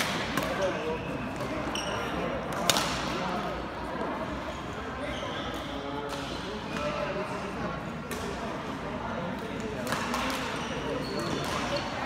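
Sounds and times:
shoe squealing on court floor: 0.6 - 2.3, 5.0 - 5.8, 10.5 - 12.0.

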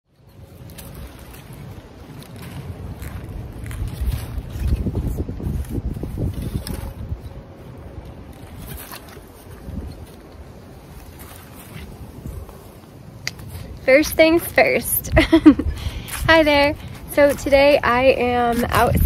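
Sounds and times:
wind buffeting microphone: 0.1 - 19.0.

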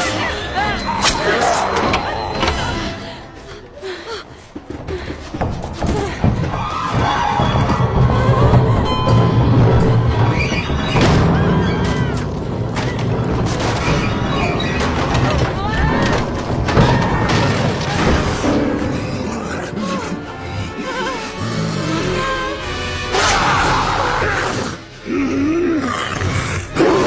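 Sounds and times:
dramatic music score: 0.0 - 27.0.

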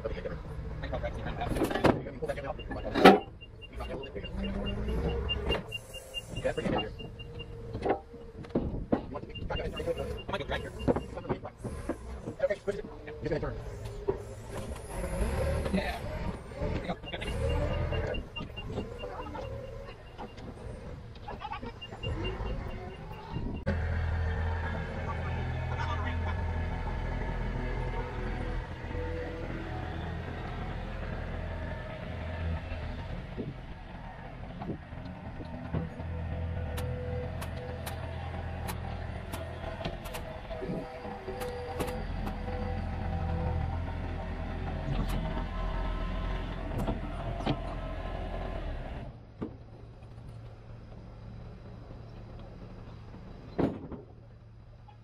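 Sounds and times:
engine droning: 0.0 - 55.0
reverse warning alarm beeping: 2.3 - 8.4, 9.1 - 11.5, 16.6 - 23.7.

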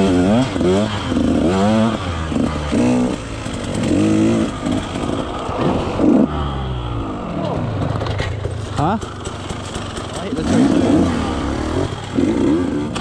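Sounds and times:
dirt bike engine revving: 0.0 - 13.0.

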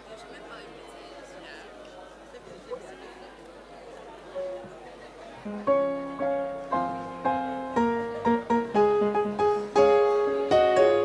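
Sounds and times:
faint room murmur: 0.0 - 11.0
electric piano hymn chords: 5.5 - 11.0.

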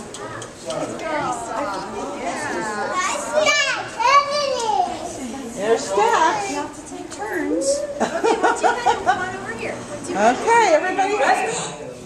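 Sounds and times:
children chattering: 0.0 - 11.9.

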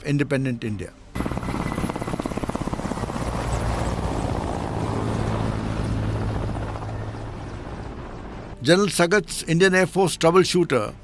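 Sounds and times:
helicopter engine hum: 1.2 - 8.6
helicopter rotor beat: 1.2 - 8.6.

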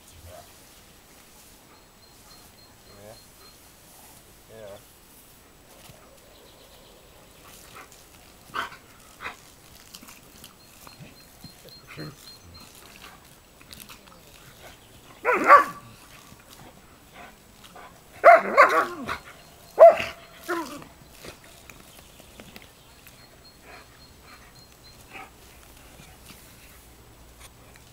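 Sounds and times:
dog barking: 15.2 - 15.9, 18.2 - 19.2, 19.8 - 20.8.

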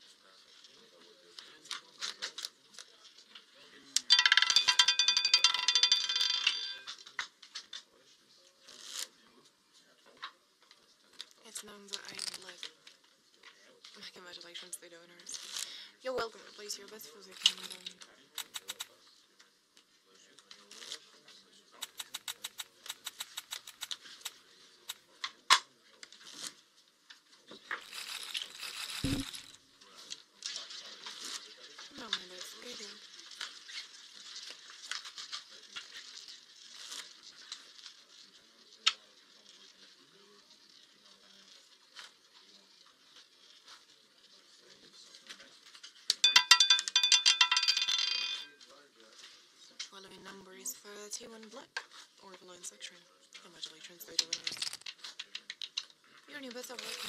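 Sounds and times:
rapid clicks of betting chips: 4.0 - 7.0, 17.3 - 18.9, 21.8 - 25.0, 27.8 - 29.5, 46.1 - 48.5, 54.1 - 55.9
ball clattering into pocket: 4.1 - 7.0, 46.1 - 48.5
roulette ball whirring: 21.8 - 25.0, 27.7 - 29.6.

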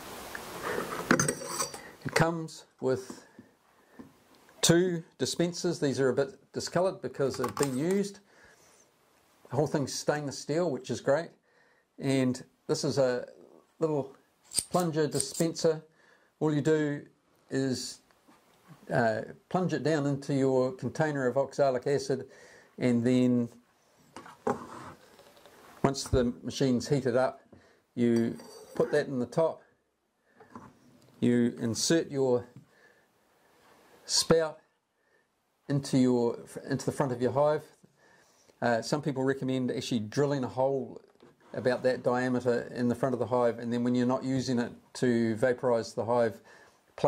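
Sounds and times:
metal scraping and clinking: 0.8 - 2.2, 7.4 - 8.0, 14.4 - 15.6, 28.1 - 29.1
man talking: 2.0 - 3.3, 4.6 - 8.3, 9.5 - 11.4, 12.0 - 18.0, 18.8 - 23.6, 25.8 - 27.4, 28.0 - 29.7, 31.2 - 32.6, 34.1 - 34.7, 35.7 - 37.8, 38.6 - 46.4.

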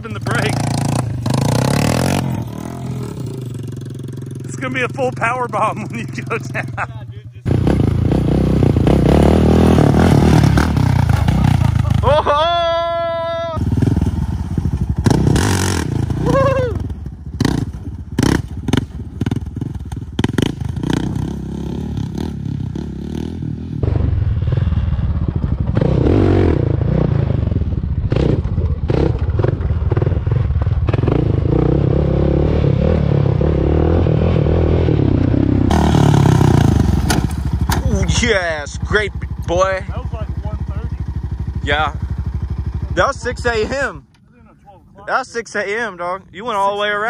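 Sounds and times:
quad engine revving: 0.0 - 12.6, 13.2 - 43.9.

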